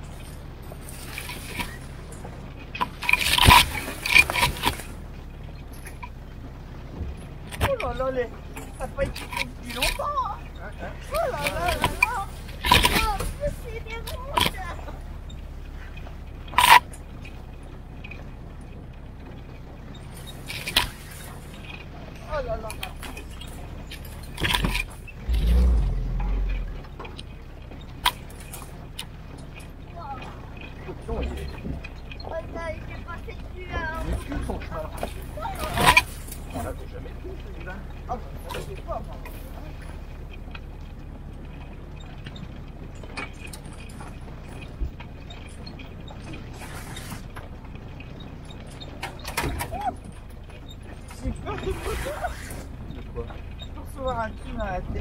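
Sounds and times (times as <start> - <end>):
body and suspension rattles: 0.0 - 55.0
clatter over rocks: 0.0 - 55.0
jeep engine rumble: 0.0 - 55.0.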